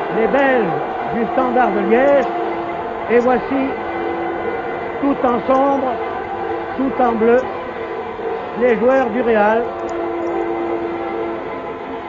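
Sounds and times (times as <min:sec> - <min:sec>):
horn blowing long note: 0:00.0 - 0:12.0
stadium crowd noise: 0:00.0 - 0:12.0.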